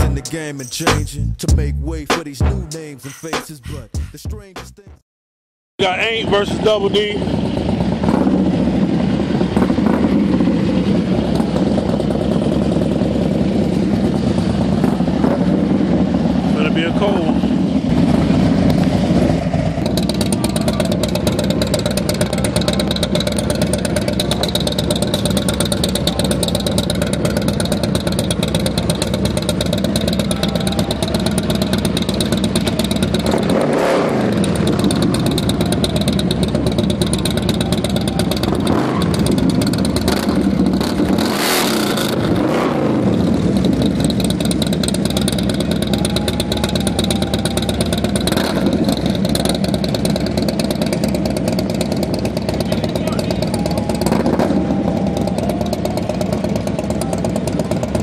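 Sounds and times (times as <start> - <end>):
motorcycle engine running: 5.8 - 58.0.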